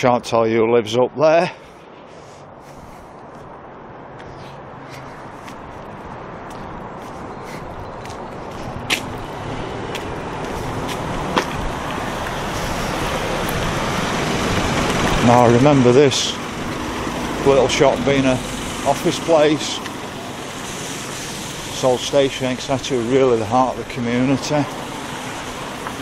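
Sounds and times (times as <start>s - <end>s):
road traffic noise: 0.0s - 26.0s.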